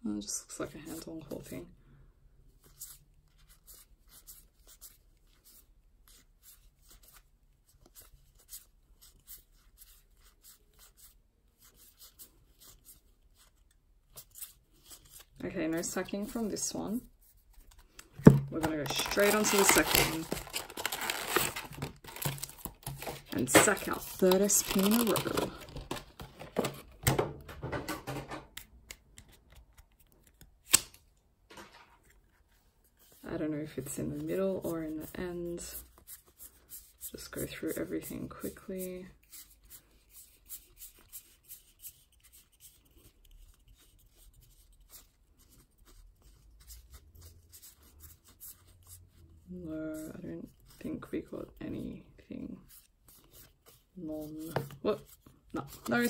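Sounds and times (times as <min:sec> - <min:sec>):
plastic packaging crinkling: 0:18.2 - 0:26.9.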